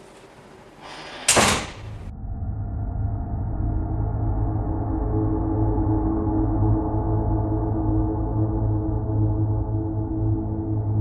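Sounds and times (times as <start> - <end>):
door slamming shut: 0.9 - 2.1.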